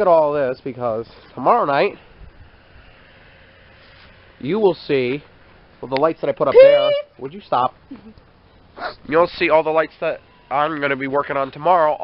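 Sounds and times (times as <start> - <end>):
outdoor hiss and low rumble: 0.0 - 12.0.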